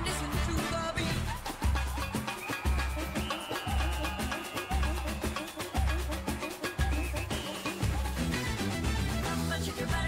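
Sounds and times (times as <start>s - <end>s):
upbeat samba dance music: 0.0s - 10.0s.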